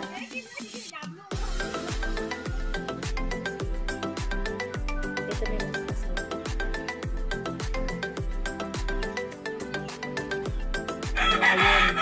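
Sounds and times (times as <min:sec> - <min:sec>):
background music with steady beat: 0:00.0 - 0:12.0
rooster crowing: 0:11.1 - 0:12.0.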